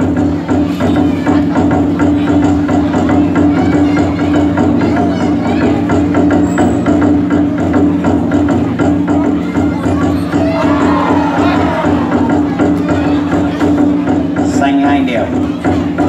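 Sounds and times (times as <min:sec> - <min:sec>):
drum beaten in quick rhythm: 0:00.0 - 0:16.0.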